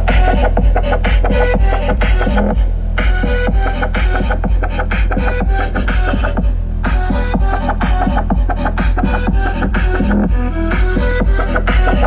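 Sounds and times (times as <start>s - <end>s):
bass-heavy music through car speakers: 0.0s - 12.0s.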